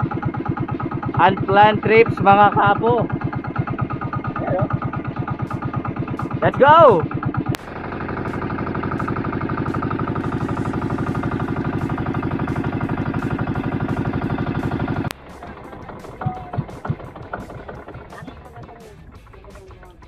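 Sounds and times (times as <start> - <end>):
boat engine chugging: 0.0 - 20.0
scattered knocks: 15.1 - 19.7.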